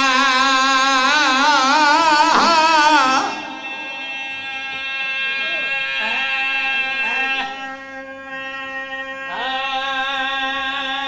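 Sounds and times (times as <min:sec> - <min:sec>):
steady drone tone: 0:00.9 - 0:11.0
faint voice: 0:05.4 - 0:06.2.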